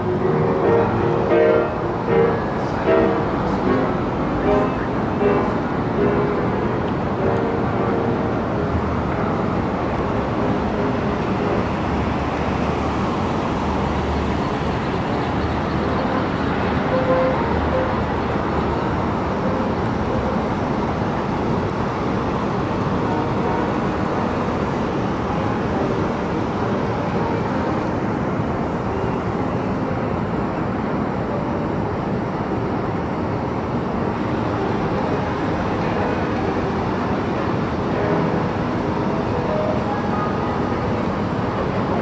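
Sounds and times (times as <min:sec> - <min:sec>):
city traffic rumble: 0:00.0 - 0:42.0.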